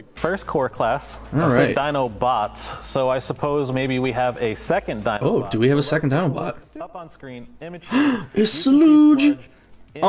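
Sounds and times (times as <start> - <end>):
person gasping: 7.8 - 8.4.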